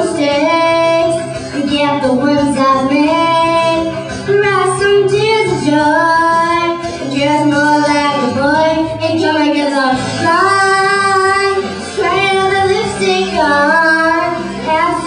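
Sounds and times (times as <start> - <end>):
girl singing into a microphone: 0.0 - 15.0
low musical accompaniment: 0.0 - 15.0.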